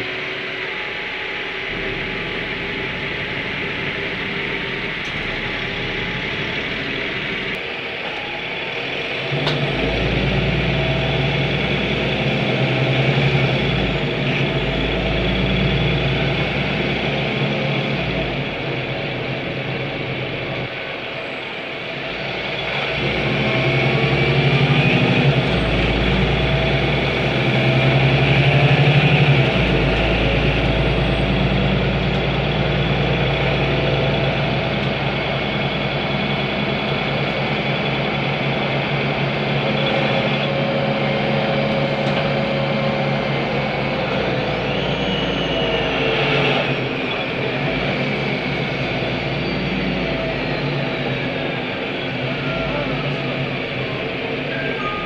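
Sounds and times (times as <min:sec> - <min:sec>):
bus engine drone: 0:00.0 - 0:55.0.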